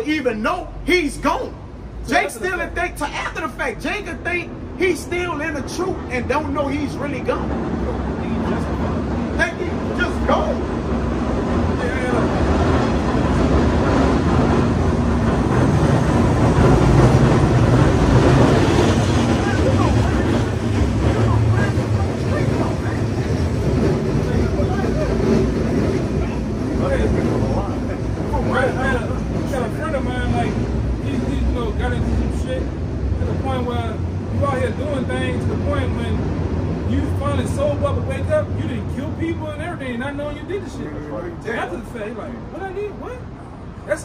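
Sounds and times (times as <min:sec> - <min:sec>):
street traffic: 0:00.0 - 0:44.0
streetcar rumbling past: 0:00.0 - 0:44.0
faint voices: 0:17.2 - 0:35.9.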